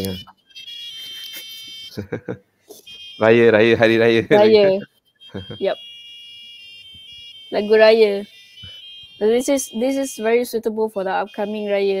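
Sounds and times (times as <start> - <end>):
tinny electronic beeped melody: 2.7 - 5.9.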